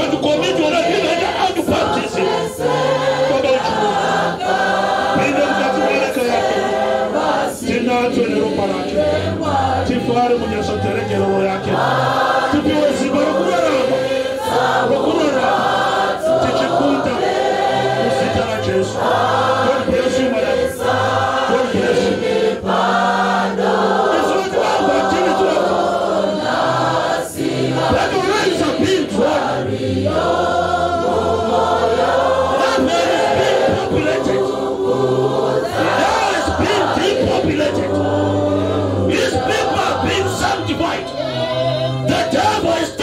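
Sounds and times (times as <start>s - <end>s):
choir singing: 0.0s - 43.0s.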